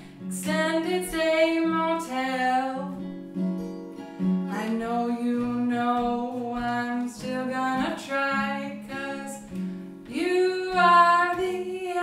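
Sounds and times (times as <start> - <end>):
woman singing: 0.0 - 3.2, 4.5 - 12.0
acoustic guitar: 0.0 - 12.0.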